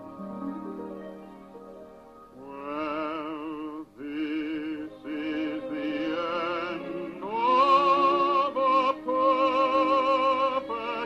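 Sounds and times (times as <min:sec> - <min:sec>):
person singing with vibrato: 0:02.3 - 0:11.0.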